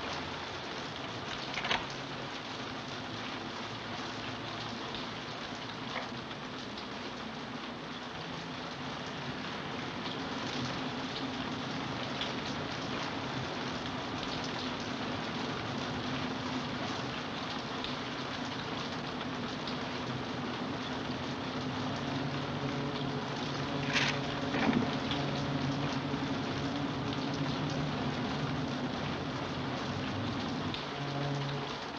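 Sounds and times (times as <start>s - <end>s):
steady rain falling: 0.0s - 31.9s.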